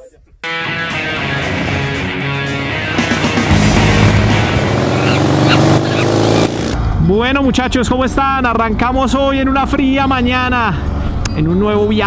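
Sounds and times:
intro music: 0.5 - 6.9
engine revving: 0.8 - 7.0.

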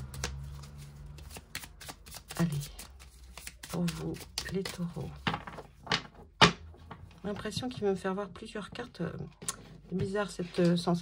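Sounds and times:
cards being shuffled by hand: 0.0 - 5.7.

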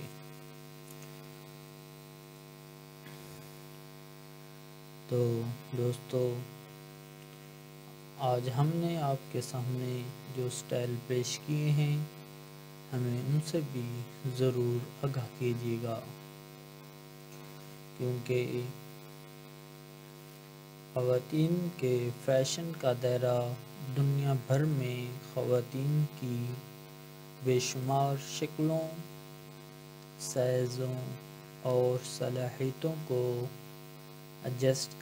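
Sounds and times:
buzzing electrical hum: 0.0 - 35.0.

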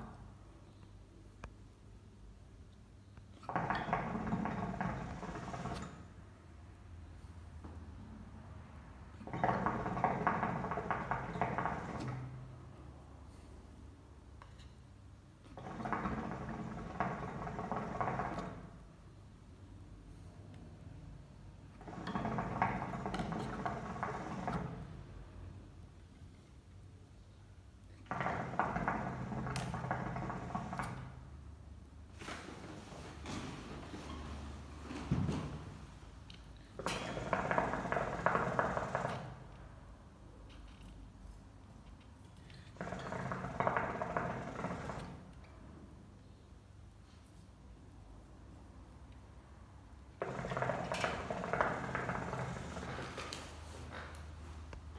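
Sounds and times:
hookah water bubbling: 50.2 - 53.0.

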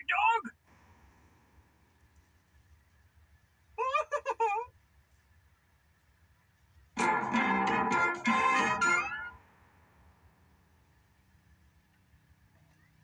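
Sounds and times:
faint television hum: 0.0 - 9.4, 10.5 - 13.0
musical logo sting: 7.0 - 9.4.

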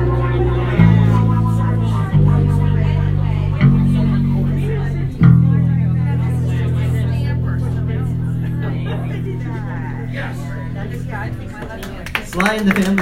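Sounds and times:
acoustic guitar chords: 0.0 - 12.0
faint voices: 0.0 - 13.0.

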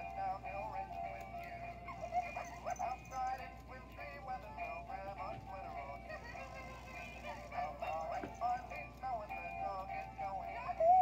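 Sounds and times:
tinny toy music with singing: 0.0 - 11.0.

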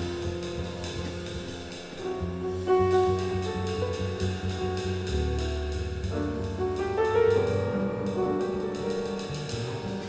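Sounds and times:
acoustic grand piano: 0.0 - 10.0
upright double bass: 0.0 - 10.0.

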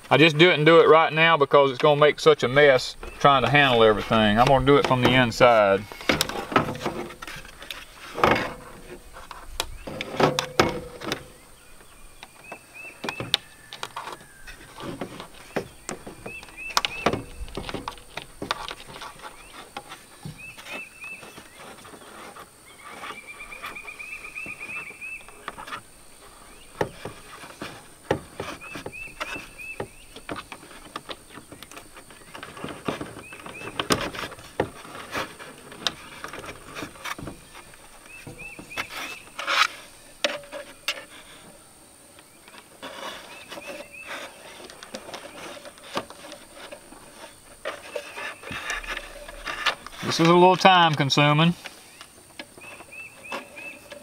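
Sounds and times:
plastic handling clicks and knocks: 1.8 - 41.6, 42.2 - 54.0.

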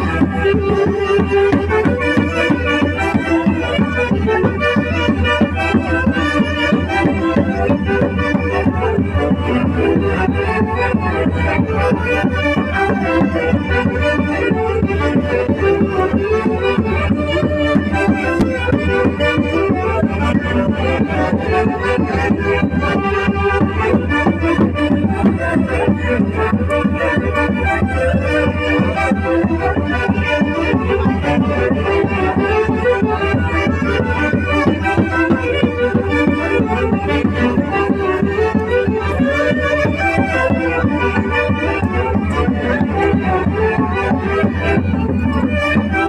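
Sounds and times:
folk dance music with wind instruments: 0.0 - 46.0.

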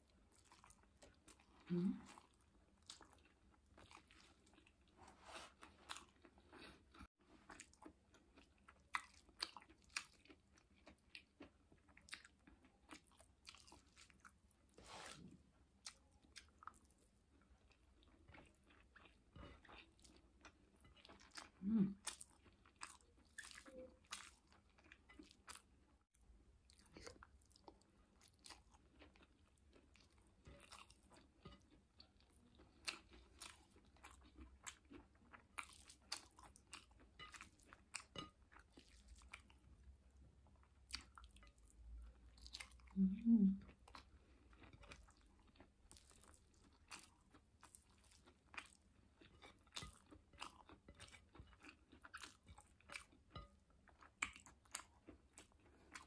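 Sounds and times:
chewing food: 0.0 - 56.0.

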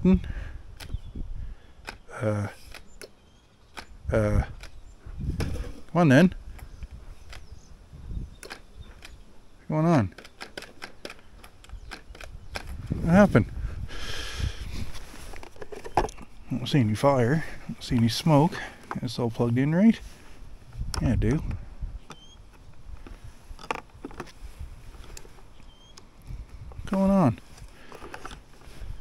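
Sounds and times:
light irregular clicks: 1.8 - 4.0, 8.4 - 9.2.

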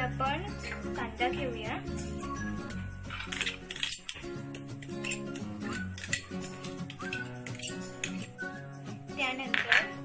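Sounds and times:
background music: 0.0 - 10.0
spoon clinking against steel bowl: 2.0 - 8.4.

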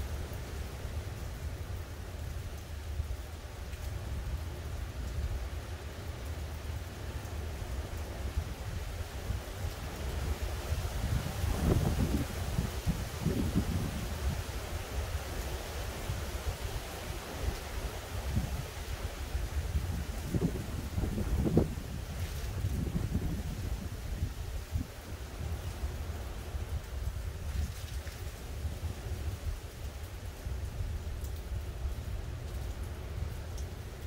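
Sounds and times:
gusty wind buffeting microphone: 8.1 - 33.4.

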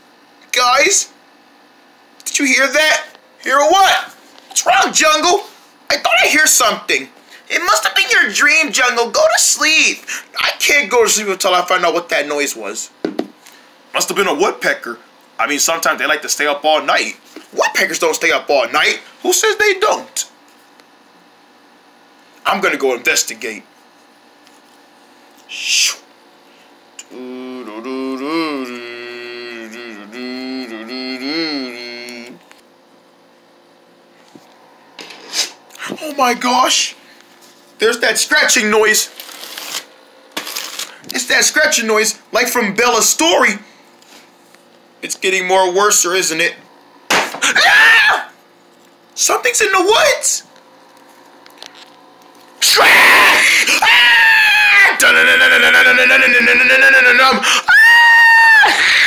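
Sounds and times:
hissing owl screech: 25.5 - 26.0, 52.6 - 55.3
person screaming in fright: 27.2 - 32.4, 47.4 - 48.3, 52.6 - 59.0
hand scratching plastic sheet: 39.1 - 41.0.

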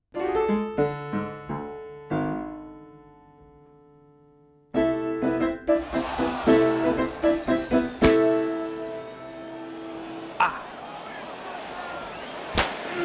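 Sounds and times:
piano chords: 0.1 - 10.4
sharp crack: 12.6 - 12.9.

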